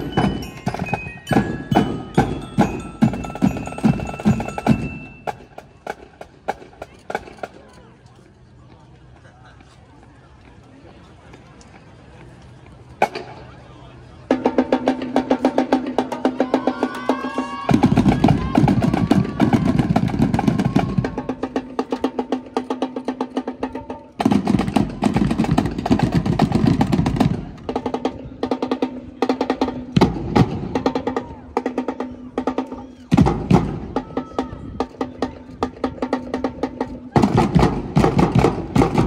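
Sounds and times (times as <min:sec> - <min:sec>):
marching drum line cadence: 0:00.0 - 0:08.3, 0:12.7 - 0:39.0.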